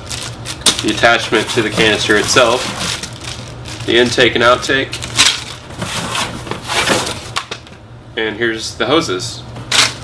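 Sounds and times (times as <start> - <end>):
cardboard and plastic rustling: 0.0 - 4.3, 4.9 - 7.5.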